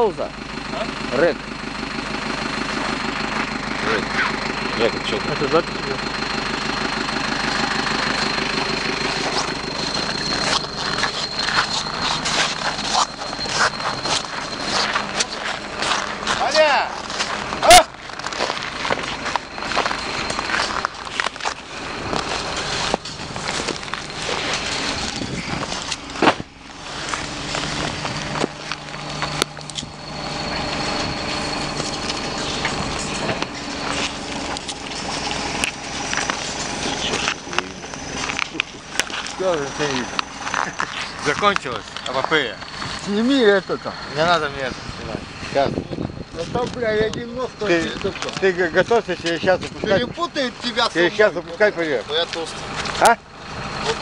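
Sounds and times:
vehicle engine idling: 0:00.0 - 0:54.0
thin high whine: 0:02.1 - 0:54.0.

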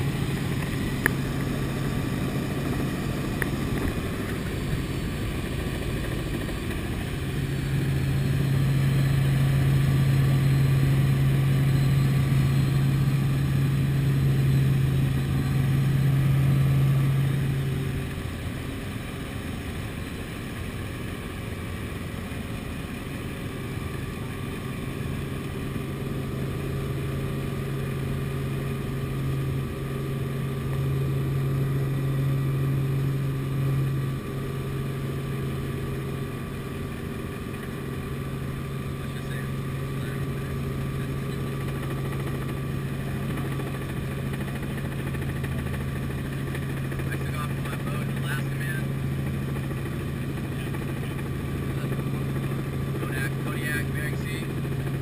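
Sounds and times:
helicopter engine and rotor drone: 0:00.0 - 0:55.0.

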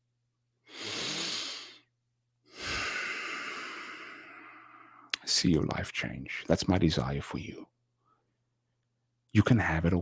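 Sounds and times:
man breathing into microphone: 0:02.5 - 0:05.1.

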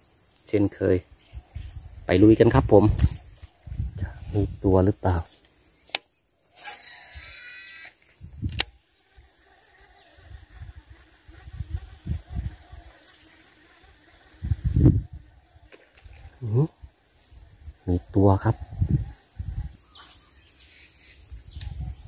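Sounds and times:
insects chirring: 0:00.0 - 0:22.0
fishing line whirring: 0:06.5 - 0:08.0.

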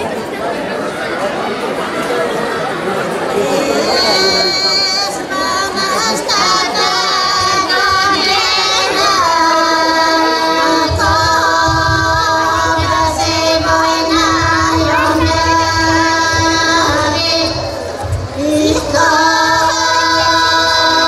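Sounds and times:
women's folk choir singing a cappella: 0:03.5 - 0:21.0.

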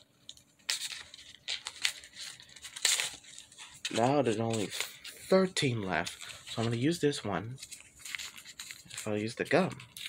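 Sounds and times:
gum pack paper rustling: 0:00.2 - 0:10.0.

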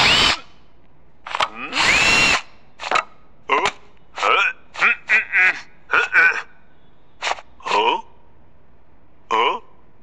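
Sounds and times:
cordless drill whirring: 0:00.0 - 0:00.4, 0:01.8 - 0:02.5.

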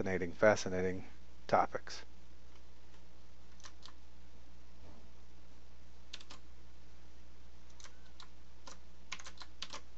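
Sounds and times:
steady low hum: 0:00.0 - 0:09.9
keyboard keystrokes clicking: 0:06.1 - 0:06.4, 0:07.7 - 0:09.9.

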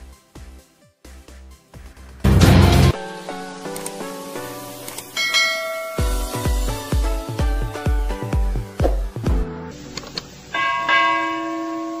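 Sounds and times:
quick clicks: 0:03.7 - 0:04.0, 0:04.8 - 0:05.2
bell chime ringing: 0:05.2 - 0:06.4, 0:10.5 - 0:12.0.

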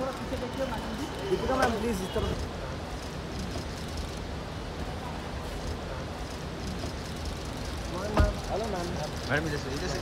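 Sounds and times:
traffic rumble and idling engines: 0:00.0 - 0:10.0.

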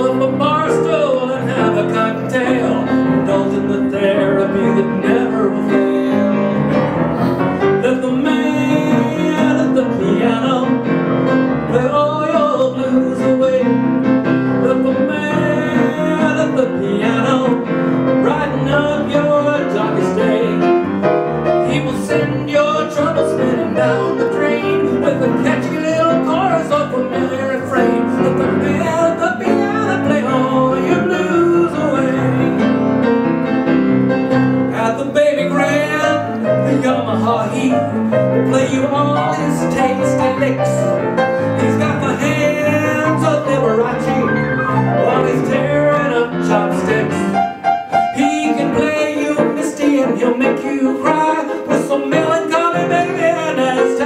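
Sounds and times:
man singing a ballad: 0:00.0 - 0:33.2, 0:34.5 - 0:54.0
grand piano playing: 0:00.0 - 0:54.0.

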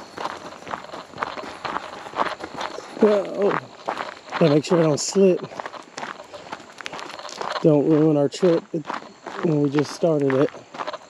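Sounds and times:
footsteps on gravel and dry leaves: 0:00.0 - 0:11.0.

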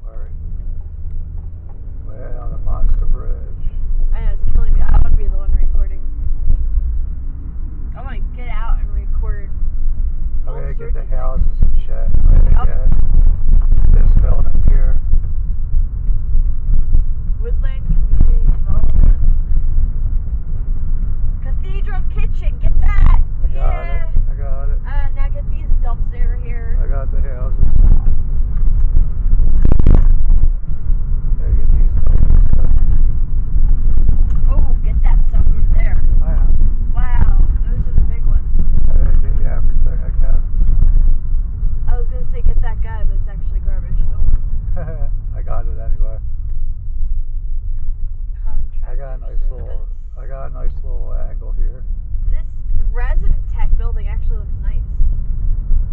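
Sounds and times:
car cabin rumble: 0:00.0 - 0:55.9.

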